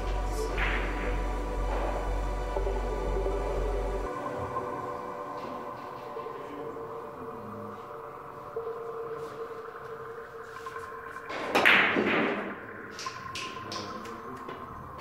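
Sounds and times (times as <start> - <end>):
ambient background music: 0.0 - 15.0.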